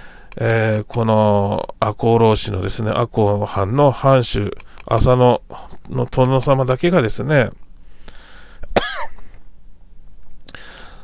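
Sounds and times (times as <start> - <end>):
man clearing his throat: 8.8 - 9.2.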